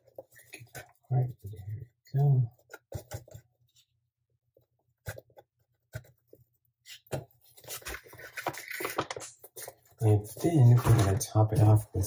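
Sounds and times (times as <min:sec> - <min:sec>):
packaging rustling and scraping: 0:06.9 - 0:11.2.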